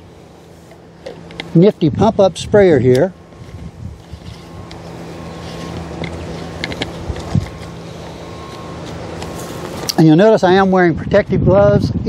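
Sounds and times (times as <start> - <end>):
low mechanical hum: 0.0 - 12.0
wind noise: 1.8 - 7.8, 10.3 - 12.0.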